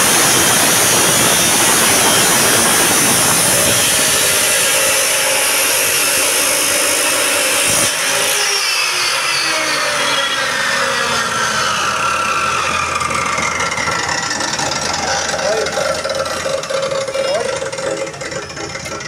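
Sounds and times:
cut-off saw motor winding down: 0:00.0 - 0:19.0.

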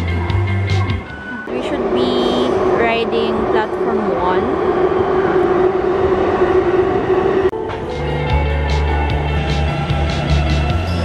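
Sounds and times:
background music with bass line: 0:00.0 - 0:01.2, 0:07.6 - 0:11.0
metro platform hum: 0:00.0 - 0:11.0.

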